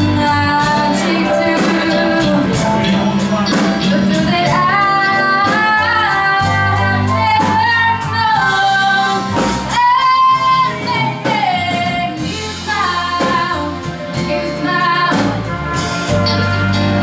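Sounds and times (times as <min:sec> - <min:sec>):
woman singing: 0:00.0 - 0:03.0, 0:03.8 - 0:15.8
live rock band: 0:00.0 - 0:17.0.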